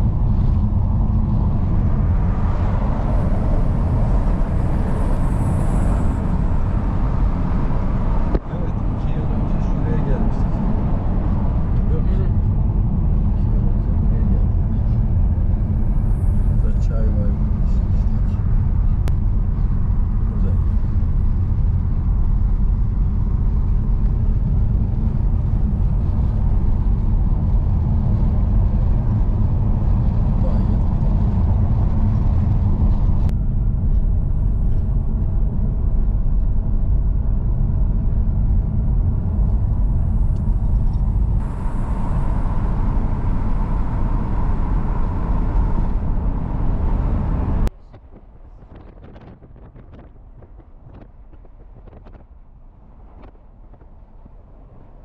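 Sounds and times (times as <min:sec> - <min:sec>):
car road and engine rumble: 0:00.0 - 0:55.0.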